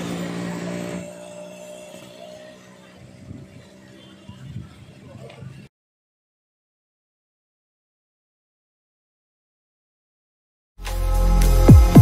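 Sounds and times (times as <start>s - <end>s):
engine hum: 0.0s - 5.7s.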